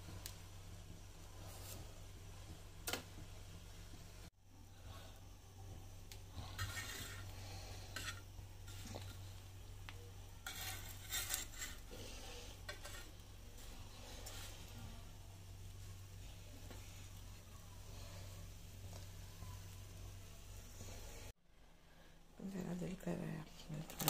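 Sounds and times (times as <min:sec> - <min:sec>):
low steady hum: 0:00.0 - 0:24.0
metal spatula scraping on iron pan: 0:06.4 - 0:09.4, 0:10.4 - 0:14.8.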